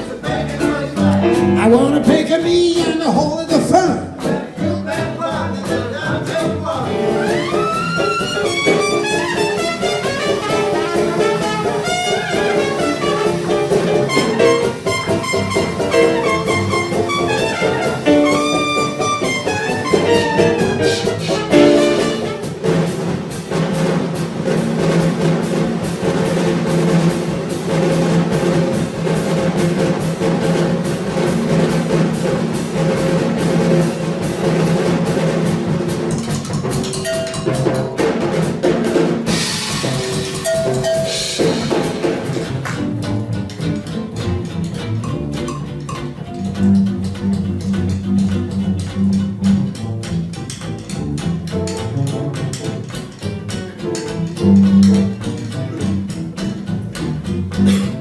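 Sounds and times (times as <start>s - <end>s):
snare and bass drum strokes: 0.0s - 58.0s
cymbals crashing: 39.3s - 42.3s.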